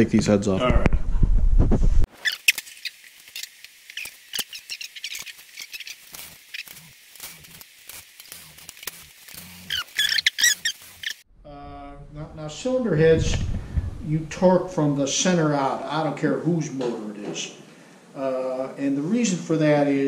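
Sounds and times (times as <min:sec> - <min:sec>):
short squeaks: 0:02.1 - 0:07.6, 0:08.2 - 0:11.2.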